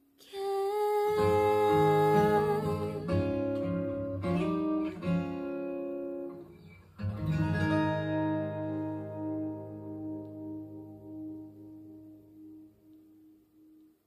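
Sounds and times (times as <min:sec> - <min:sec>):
acoustic guitar chords: 0:00.3 - 0:14.0.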